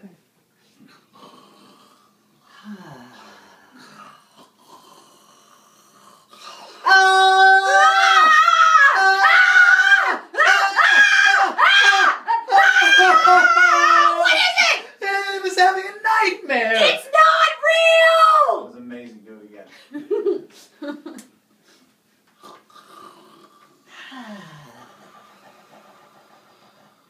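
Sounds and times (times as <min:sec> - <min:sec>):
man and woman screaming: 0:06.8 - 0:15.4, 0:16.0 - 0:18.6.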